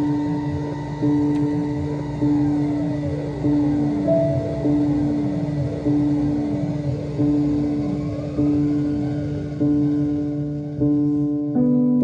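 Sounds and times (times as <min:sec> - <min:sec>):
synthesizer note with falling sweeps: 0:00.0 - 0:11.3
steady low drone: 0:00.0 - 0:12.0.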